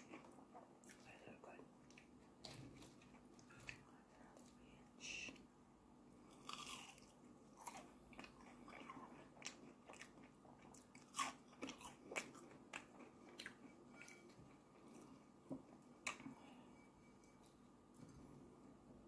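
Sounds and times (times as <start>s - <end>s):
crunchy chewing: 6.3s - 15.2s.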